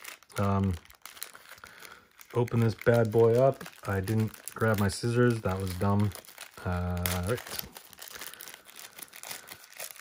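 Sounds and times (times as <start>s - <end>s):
plastic wrapping crinkling and tearing: 0.0s - 10.0s.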